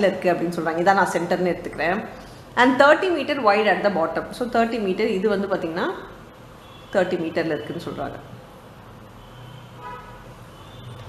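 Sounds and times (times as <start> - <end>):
low steady background hum: 0.0 - 9.4.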